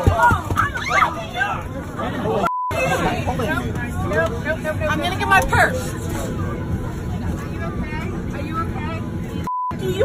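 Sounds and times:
airliner cabin rumble: 0:00.7 - 0:10.0.

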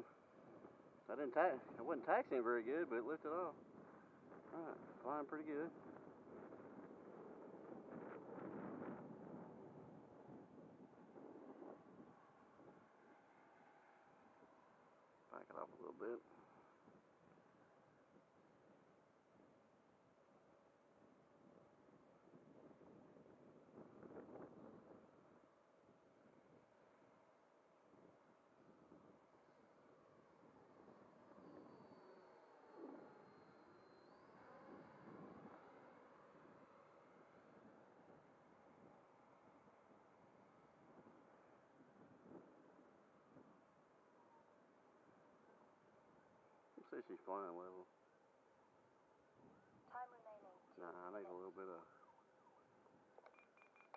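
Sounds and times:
faint whine of rc jet: 0:00.0 - 0:53.9.

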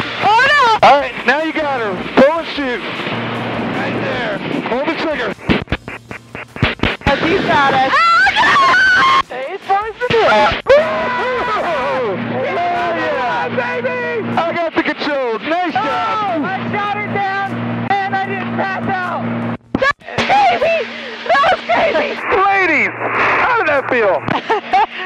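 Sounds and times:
plane engine drone: 0:00.0 - 0:25.0
people shouting and laughing: 0:07.8 - 0:09.3, 0:10.1 - 0:14.3, 0:19.8 - 0:22.3.

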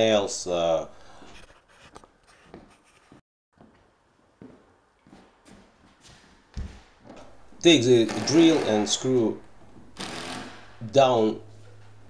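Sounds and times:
knocks and shuffling on plywood: 0:03.6 - 0:07.2.

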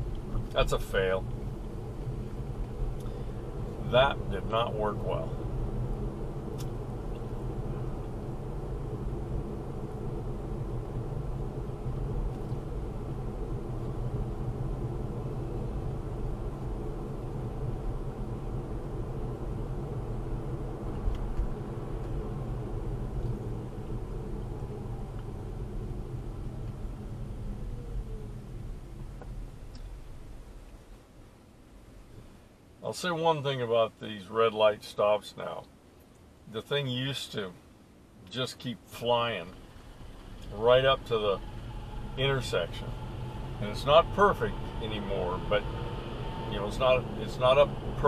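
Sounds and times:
road and tyre noise in car cabin: 0:00.0 - 0:48.0
faint electric motor whine: 0:39.3 - 0:48.0.

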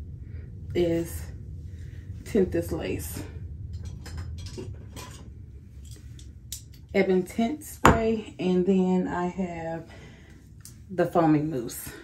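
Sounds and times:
low steady room noise: 0:00.0 - 0:12.0.

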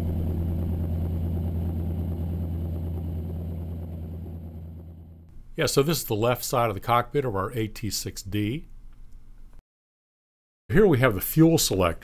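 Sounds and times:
low engine drone: 0:00.0 - 0:05.3.

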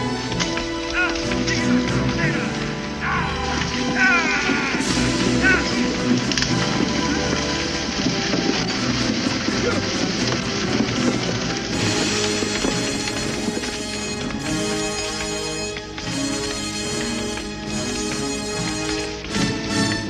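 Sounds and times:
action scene noise: 0:00.0 - 0:20.0
dramatic orchestral film music: 0:00.0 - 0:20.0.

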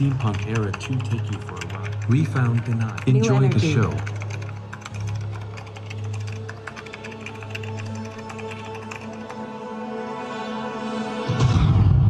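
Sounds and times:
rapid irregular clicking: 0:00.0 - 0:10.0.

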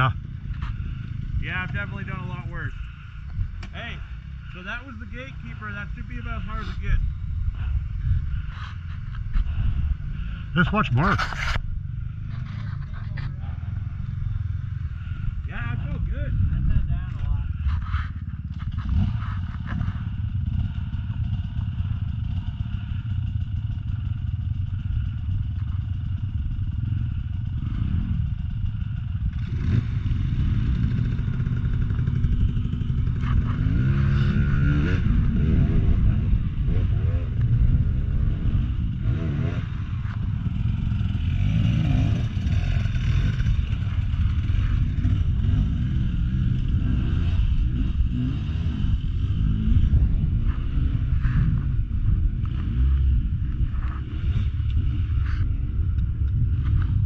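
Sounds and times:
dirt bike engine revving: 0:00.0 - 0:57.0
dirt bike engines idling: 0:00.0 - 0:57.0.

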